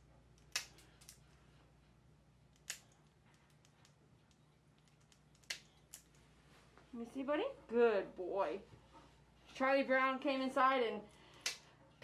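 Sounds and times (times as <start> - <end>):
nail clippers snipping toenails: 0.4 - 1.2, 4.8 - 6.1.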